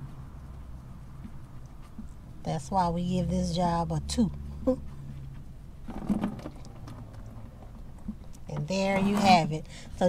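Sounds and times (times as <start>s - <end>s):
handling noise: 5.1s - 9.6s
oil pouring into plastic bucket: 5.9s - 8.1s.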